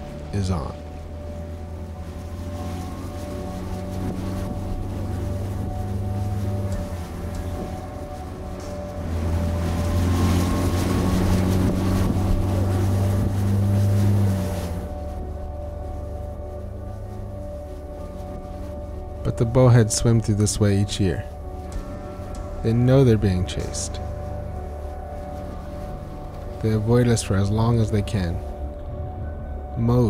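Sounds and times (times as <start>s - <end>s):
outboard motor running: 0.0s - 29.7s.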